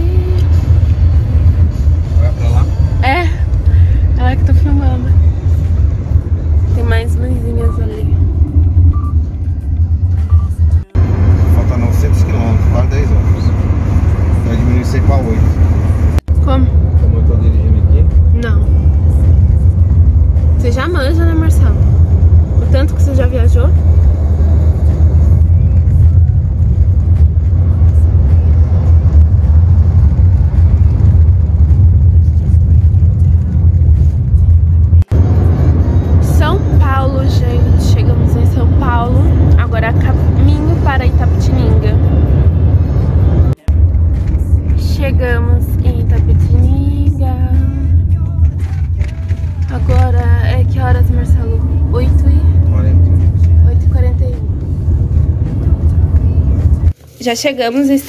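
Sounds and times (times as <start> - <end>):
car road and engine rumble: 0.0 - 58.0
people talking: 2.2 - 3.4, 4.2 - 5.2, 6.7 - 8.2, 10.7 - 13.5, 14.5 - 15.6, 16.4 - 18.8, 20.6 - 21.8, 22.6 - 23.7, 36.2 - 42.0, 44.8 - 48.0, 49.7 - 54.5, 57.1 - 58.0.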